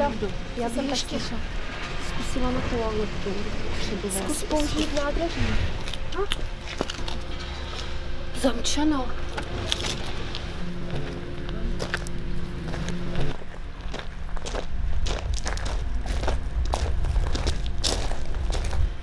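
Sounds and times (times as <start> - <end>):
steady low rumble: 0.0 - 19.0
footsteps on paving: 10.9 - 19.0.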